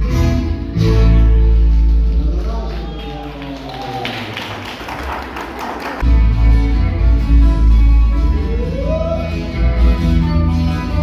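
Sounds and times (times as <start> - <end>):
string band with guitars and violin: 0.0 - 3.0, 6.0 - 11.0.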